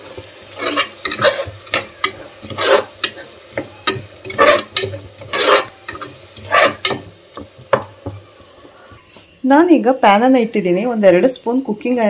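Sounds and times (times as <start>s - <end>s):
frying sizzle: 0.0s - 12.0s
spoon scraping a pot: 0.2s - 8.2s.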